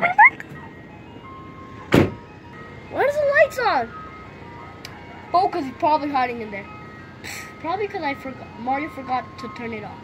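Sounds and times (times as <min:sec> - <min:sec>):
short loud thump: 0:01.9 - 0:02.2.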